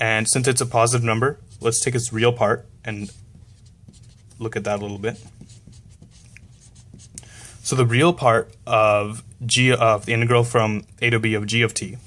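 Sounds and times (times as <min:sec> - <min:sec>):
marker pen writing on paper: 0:02.9 - 0:07.3.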